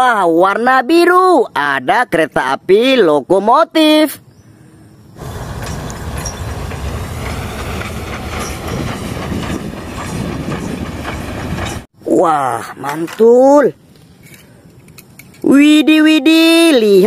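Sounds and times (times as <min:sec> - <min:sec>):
steam locomotive clattering and hissing: 0:05.2 - 0:11.9.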